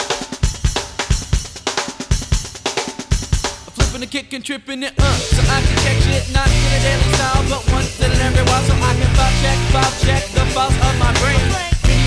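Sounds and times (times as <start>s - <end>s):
rock drum kit groove: 0.0s - 4.2s, 5.0s - 12.0s.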